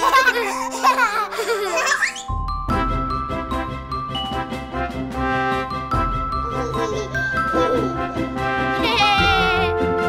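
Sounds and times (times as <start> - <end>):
toddler giggling: 0.0 - 2.2, 6.4 - 9.4
light background music: 0.0 - 10.0.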